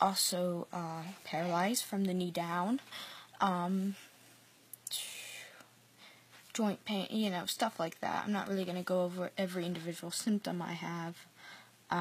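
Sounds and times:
woman taking a breath: 0:02.9 - 0:03.4, 0:11.4 - 0:11.8.

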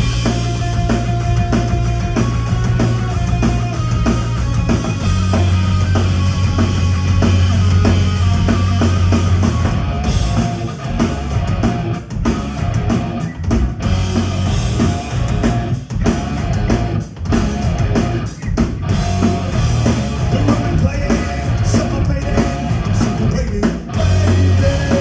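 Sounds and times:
bass guitar: 0:00.0 - 0:25.0
drum kit: 0:00.0 - 0:25.0
electric guitar: 0:00.0 - 0:25.0.

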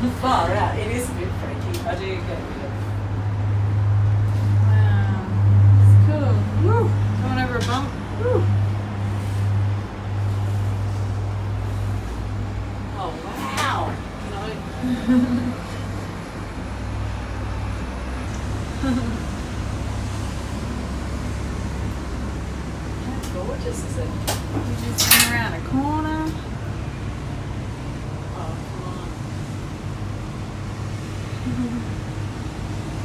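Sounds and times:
cable car cabin hum and rumble: 0:00.0 - 0:33.0.

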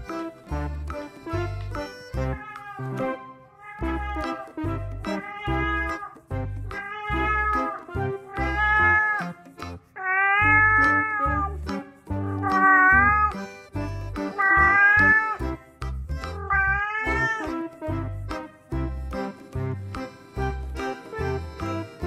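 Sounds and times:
music with bass line: 0:00.0 - 0:03.2, 0:03.8 - 0:09.8, 0:10.4 - 0:22.0
cat meowing: 0:02.4 - 0:09.4, 0:10.0 - 0:11.6, 0:12.4 - 0:13.4, 0:14.4 - 0:15.4, 0:16.4 - 0:17.5.

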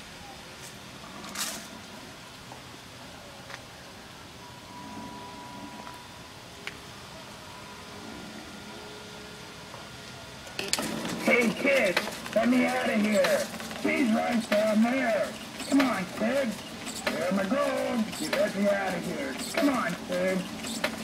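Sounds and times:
faint background noise: 0:00.0 - 0:21.0
loud recorded voice: 0:11.0 - 0:20.6.

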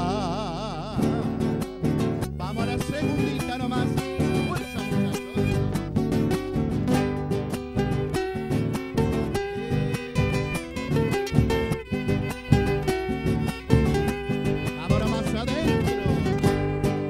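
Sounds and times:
acoustic guitars strummed: 0:00.0 - 0:17.0.

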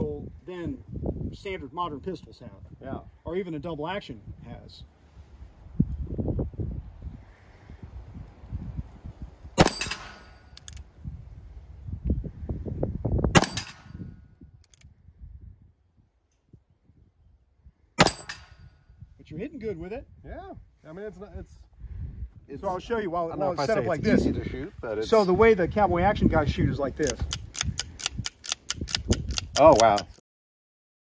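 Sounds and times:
revolver gunshots: 0:09.6 - 0:10.5, 0:13.4 - 0:14.0, 0:18.0 - 0:18.6
revolver hammer cocking: 0:09.6 - 0:10.8, 0:13.4 - 0:14.0, 0:18.0 - 0:18.6.

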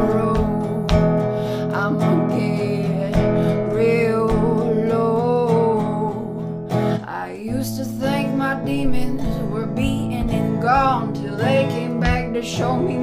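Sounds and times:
resonator guitar strumming chords: 0:00.0 - 0:13.0
woman singing: 0:00.0 - 0:13.0.

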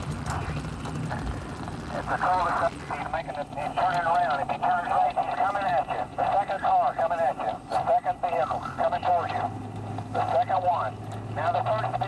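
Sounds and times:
helicopter rotor and engine drone: 0:00.0 - 0:12.0.

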